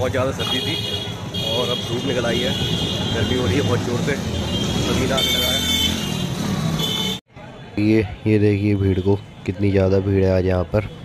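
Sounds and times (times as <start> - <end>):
voices talking: 0.0 - 6.0
motor traffic: 0.0 - 11.0.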